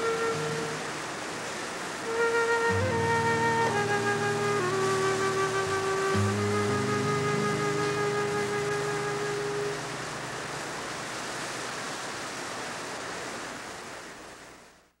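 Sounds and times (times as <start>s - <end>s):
music with held notes: 0.0s - 1.0s, 2.1s - 10.7s
river water over rapids: 0.0s - 14.9s.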